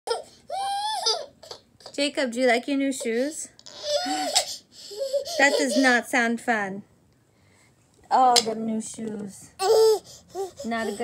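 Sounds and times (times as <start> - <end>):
toddler crying and whining: 0.1 - 1.6, 3.6 - 6.1, 9.6 - 11.0.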